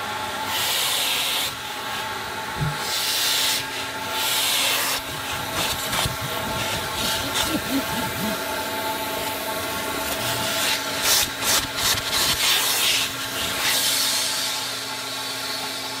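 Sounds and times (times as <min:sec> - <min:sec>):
nozzle scraping and sucking carpet: 0:00.3 - 0:15.8
carpet extractor motor whine: 0:01.5 - 0:11.7.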